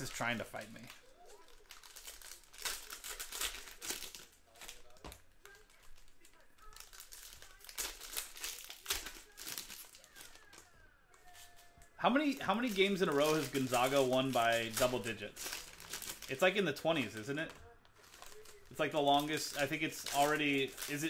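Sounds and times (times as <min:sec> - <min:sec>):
foil wrappers crinkling: 0:00.0 - 0:21.0.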